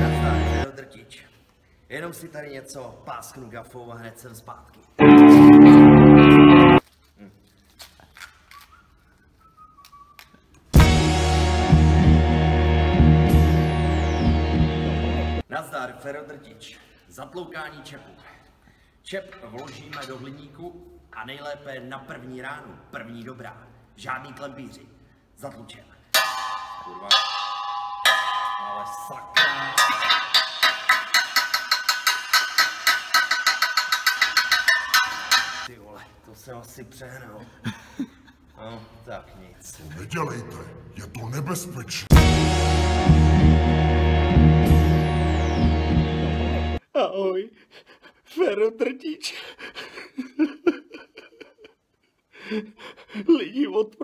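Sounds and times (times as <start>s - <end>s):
hammer striking metal: 26.2s - 35.7s.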